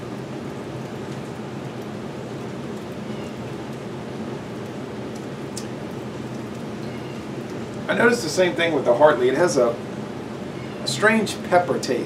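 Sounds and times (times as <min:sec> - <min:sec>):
air conditioner hum and hiss: 0:00.0 - 0:12.0.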